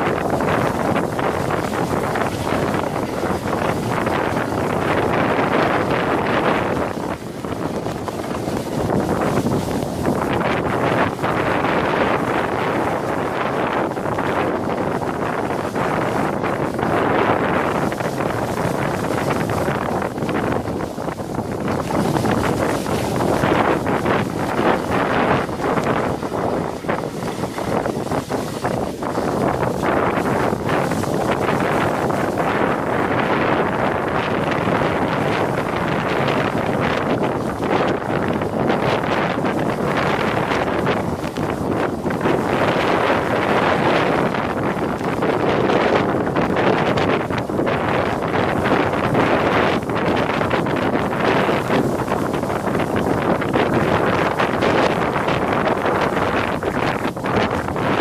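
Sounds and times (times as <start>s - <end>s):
sledge sliding on snow: 0.0s - 58.0s
wind buffeting microphone: 0.0s - 58.0s.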